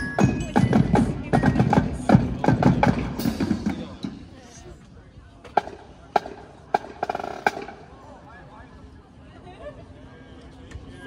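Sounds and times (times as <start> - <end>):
marching drum line: 0.0 - 4.3, 5.5 - 7.9.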